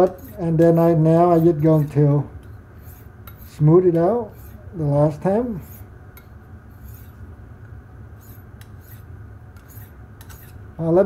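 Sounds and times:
knife scraping sharpening plate: 0.0s - 3.6s, 4.3s - 4.6s, 5.5s - 7.2s, 8.2s - 10.6s
steady low hum: 0.0s - 11.0s.

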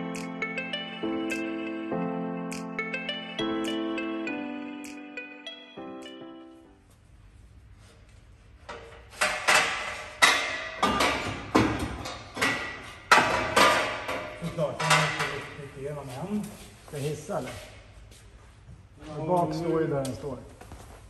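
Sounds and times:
metallic clanks and knocks: 8.6s - 15.6s.

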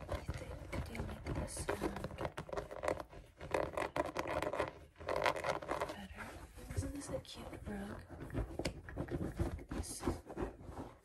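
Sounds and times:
fingernails scratching a rug: 0.0s - 11.0s.

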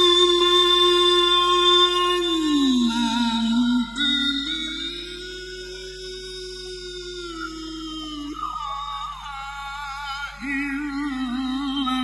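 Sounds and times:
man reciting melodically into microphone: 10.4s - 12.0s.

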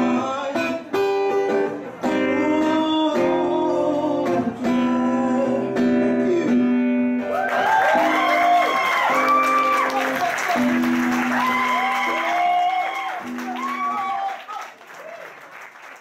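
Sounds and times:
acoustic song: 0.0s - 14.4s
audience applause and cheering: 7.3s - 16.0s.

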